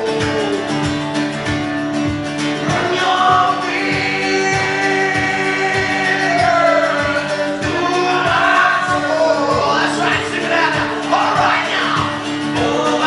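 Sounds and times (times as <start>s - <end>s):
man singing: 0.0s - 1.1s, 2.5s - 13.0s
acoustic guitar strumming: 0.0s - 13.0s.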